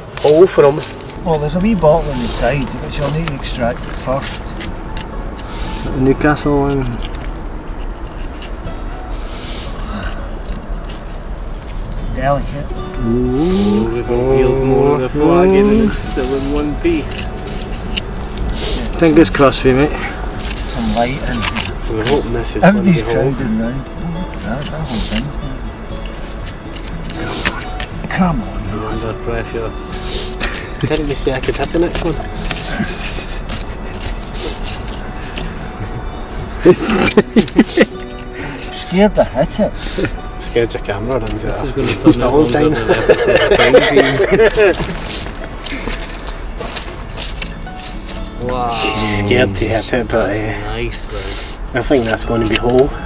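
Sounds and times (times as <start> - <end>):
hands scraping loose soil: 13.5 - 23.5, 26.0 - 52.8.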